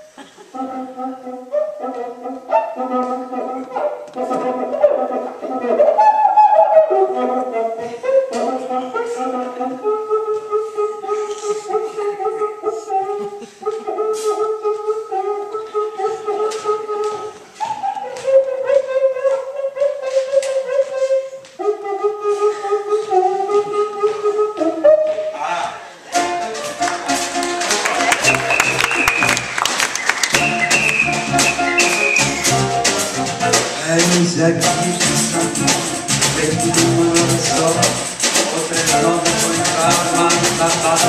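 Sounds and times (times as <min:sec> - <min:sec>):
band playing samba: 0:26.1 - 0:41.0
friction drum hooting: 0:30.4 - 0:41.0.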